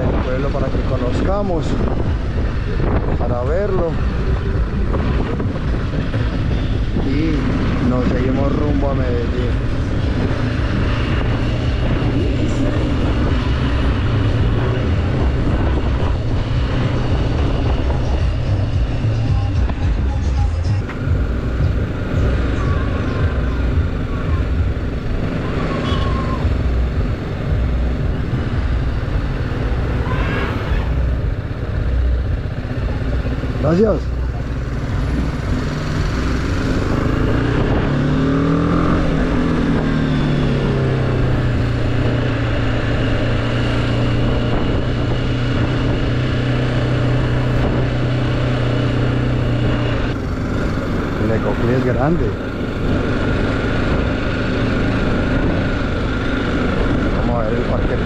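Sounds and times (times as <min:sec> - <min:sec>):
motorcycle engine at low speed: 0:00.0 - 0:58.0
road rumble: 0:00.0 - 0:58.0
wind on microphone: 0:00.0 - 0:58.0.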